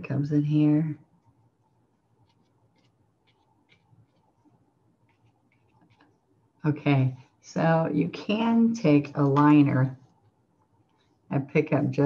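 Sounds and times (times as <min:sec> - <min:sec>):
paintbrush scratching on canvas: 0:02.2 - 0:06.2.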